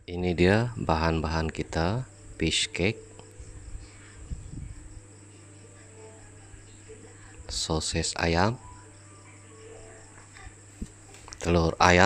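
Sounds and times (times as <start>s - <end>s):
faint background music: 0.0s - 12.0s
low electrical hum: 0.0s - 12.0s.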